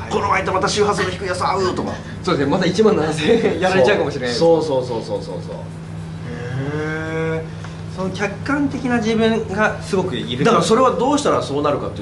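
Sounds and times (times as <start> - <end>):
low hum: 0.0 - 11.3
man's drawn-out vocal interjection: 6.2 - 7.6.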